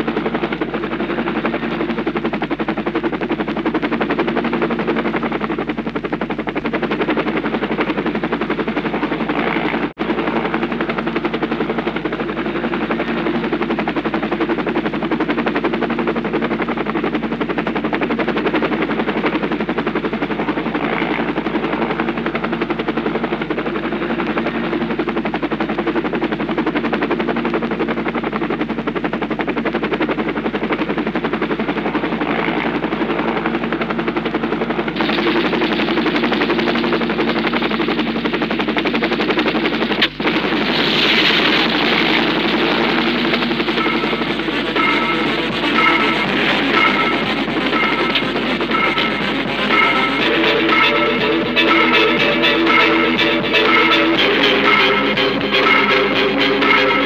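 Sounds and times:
helicopter rotor and engine: 0.0s - 57.0s.

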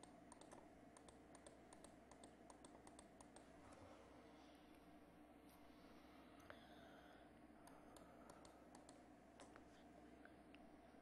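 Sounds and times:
computer clicks: 0.0s - 3.5s, 7.6s - 9.5s
low room hum: 0.0s - 11.0s.

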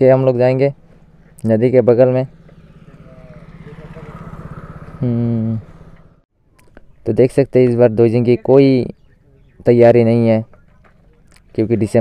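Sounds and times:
motorcycle engine running: 0.0s - 6.2s.

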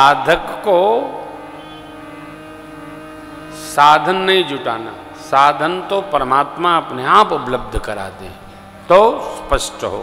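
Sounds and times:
musical drone of held tones: 0.0s - 10.0s.

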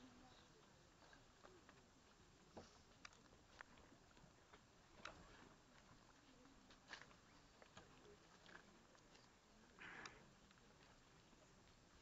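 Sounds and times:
handheld camera clicks and rustles: 1.0s - 11.9s.

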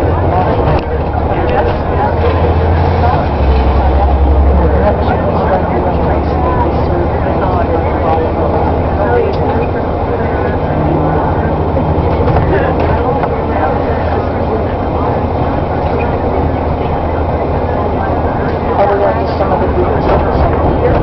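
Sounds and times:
bus engine drone: 0.0s - 21.0s
road and tyre noise: 0.0s - 21.0s.

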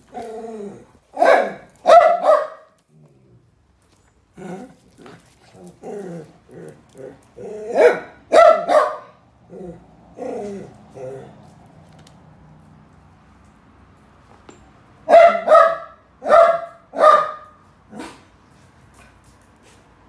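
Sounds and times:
dogs barking: 1.2s - 2.8s, 7.6s - 9.2s, 15.1s - 18.3s.

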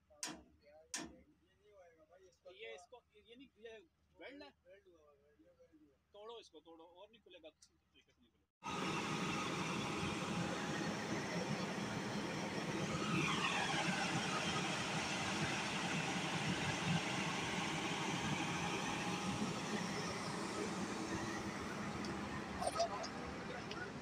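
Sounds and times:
diesel engine running: 8.6s - 24.0s
faint falling whine: 8.7s - 24.0s.

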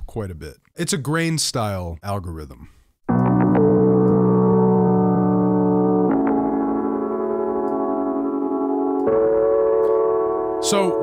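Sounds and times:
sampled piano chord loop: 3.1s - 11.0s.

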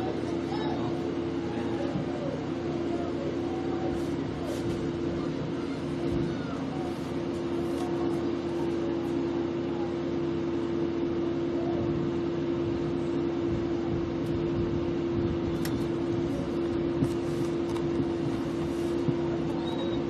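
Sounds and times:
steady constant hum: 0.0s - 20.0s.

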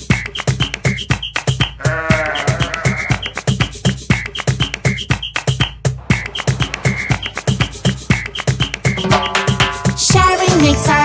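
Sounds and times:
upbeat children's music: 0.0s - 11.0s
sheep bleat: 1.8s - 3.4s.

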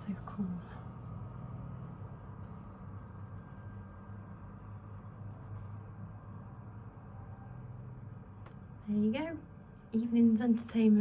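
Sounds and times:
harvester engine droning: 0.0s - 9.7s.

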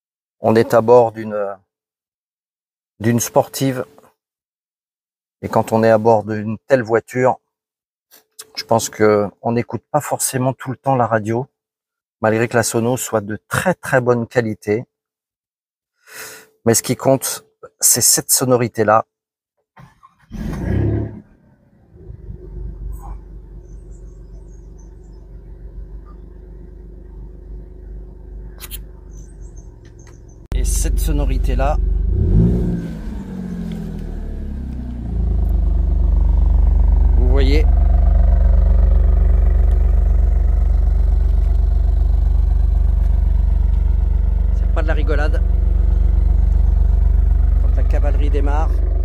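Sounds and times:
car engine starting and revving: 20.3s - 49.0s.

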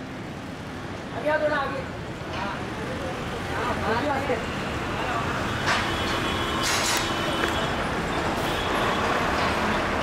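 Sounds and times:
vehicle and street noise: 0.0s - 10.0s
short bursts of noise: 5.7s - 7.7s.

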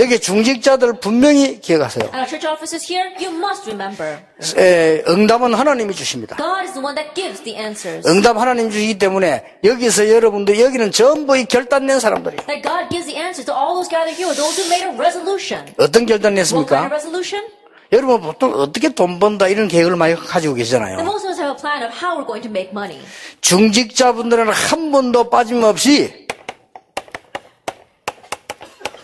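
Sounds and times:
man speaking into microphone: 0.0s - 2.1s, 4.0s - 6.4s, 7.9s - 12.4s, 15.7s - 16.9s, 23.4s - 26.2s
chalk tapping on blackboard: 12.0s - 12.8s, 26.2s - 29.0s
drawn-out hissing: 14.0s - 15.0s.

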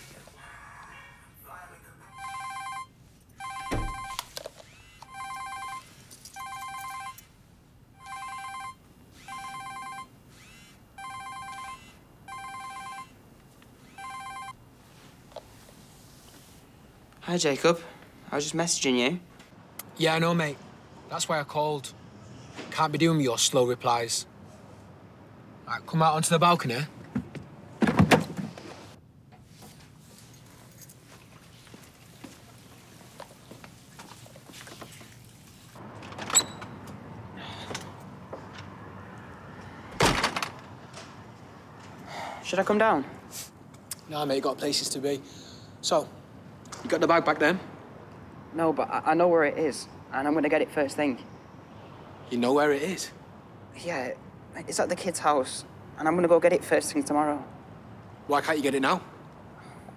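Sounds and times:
warbling electronic phone ringtone: 2.1s - 4.2s, 5.1s - 7.3s, 8.0s - 10.1s, 11.0s - 13.2s, 14.0s - 14.6s
clunk and clatter: 35.8s - 37.0s.

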